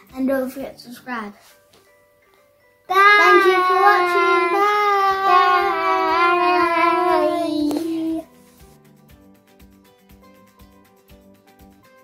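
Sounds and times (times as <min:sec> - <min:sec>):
child singing long notes: 0:02.9 - 0:08.2.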